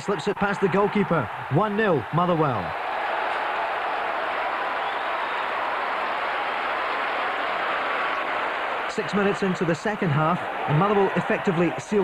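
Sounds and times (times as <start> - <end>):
football crowd cheering: 0.0 - 12.0.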